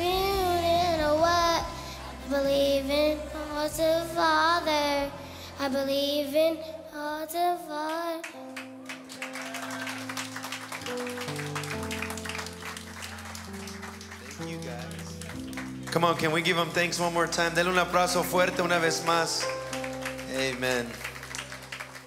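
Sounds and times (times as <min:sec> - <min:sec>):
girl singing into microphone: 0:00.0 - 0:08.5
applause: 0:07.9 - 0:22.0
held instrumental chords: 0:10.0 - 0:22.0.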